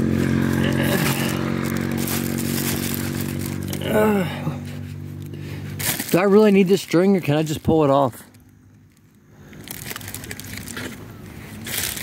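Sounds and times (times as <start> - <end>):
deflated balloon crinkling: 0.0 - 12.0
loud rustle: 0.1 - 6.6, 9.6 - 12.0.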